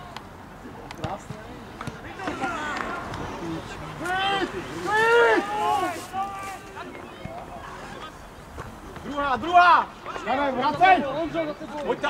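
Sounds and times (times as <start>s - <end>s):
men shouting: 2.2s - 6.8s.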